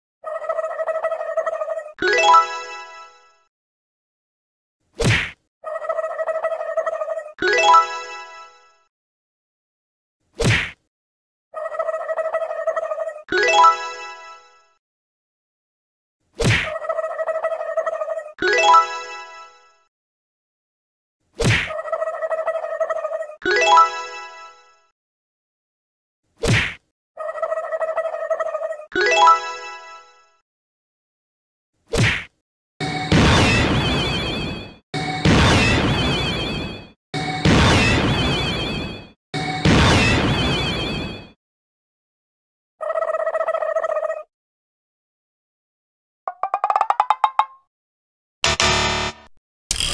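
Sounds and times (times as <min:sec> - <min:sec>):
cartoon whack: 0:05.0 - 0:05.4, 0:10.4 - 0:10.8, 0:16.4 - 0:16.7, 0:21.4 - 0:21.8, 0:26.4 - 0:26.8, 0:31.9 - 0:32.3, 0:33.1 - 0:33.9
held electronic tone: 0:48.4 - 0:49.9.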